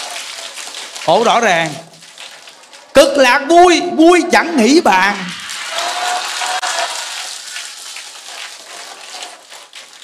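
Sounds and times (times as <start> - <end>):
audience applause: 5.4 - 8.2.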